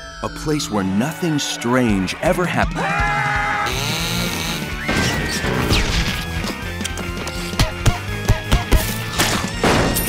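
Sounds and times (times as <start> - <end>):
soundtrack music: 0.0 - 10.0.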